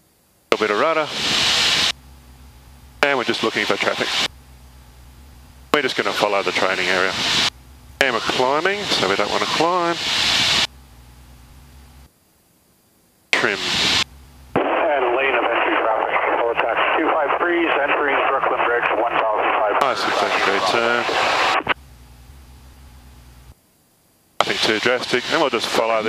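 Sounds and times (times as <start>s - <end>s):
faint steady hum: 0.0s - 26.0s
voices over aircraft radio: 0.5s - 1.2s, 3.0s - 4.3s, 5.7s - 10.2s, 13.4s - 14.0s, 14.6s - 21.8s, 24.4s - 26.0s.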